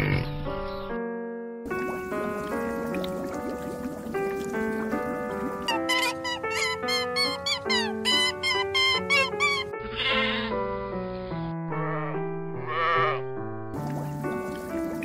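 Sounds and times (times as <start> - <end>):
background music: 0.0 - 15.0
sheep bleating: 11.9 - 13.2.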